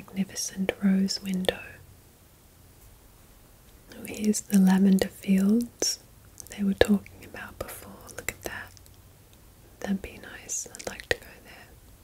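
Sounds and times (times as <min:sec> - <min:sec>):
soft whispering: 0:00.0 - 0:01.8, 0:03.9 - 0:09.0, 0:09.7 - 0:11.8.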